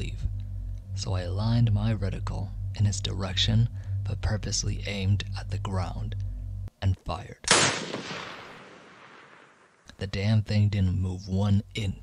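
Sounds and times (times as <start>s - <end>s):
rifle shot echo: 7.5s - 9.8s.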